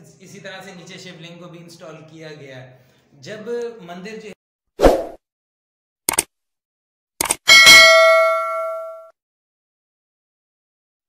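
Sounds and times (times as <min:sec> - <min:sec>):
quick double click: 0:06.1 - 0:06.3
notification bell ding: 0:07.5 - 0:09.1.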